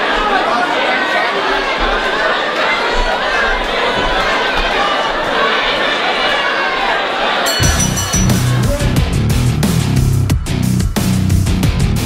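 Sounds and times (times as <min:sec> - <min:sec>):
crowd chatter: 0:00.0 - 0:09.2.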